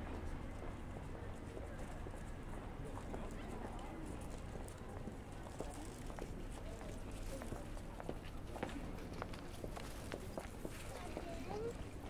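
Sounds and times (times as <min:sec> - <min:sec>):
indistinct voices of passers-by: 0:00.0 - 0:12.0.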